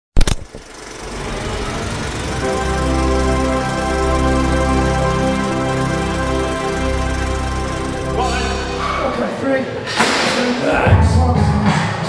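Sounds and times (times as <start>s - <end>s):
sharp loud hit: 8.1s - 10.9s.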